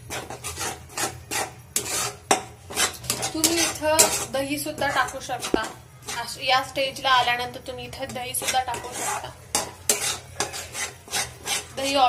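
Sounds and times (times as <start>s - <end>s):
spatula scraping metal pan: 0.0s - 12.0s.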